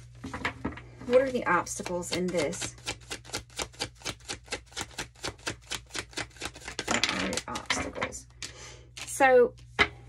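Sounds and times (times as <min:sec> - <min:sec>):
cards shuffling: 0:01.0 - 0:09.7.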